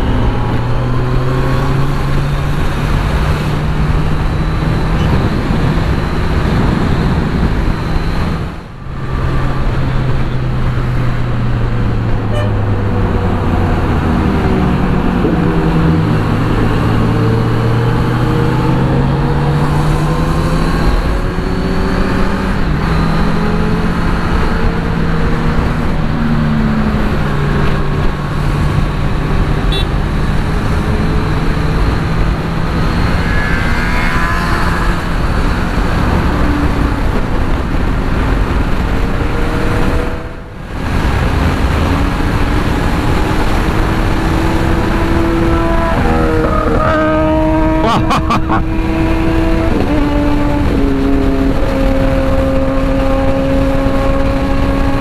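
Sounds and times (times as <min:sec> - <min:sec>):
motorcycle engine cruising: 0:00.0 - 0:55.0
wind and road noise: 0:00.0 - 0:55.0.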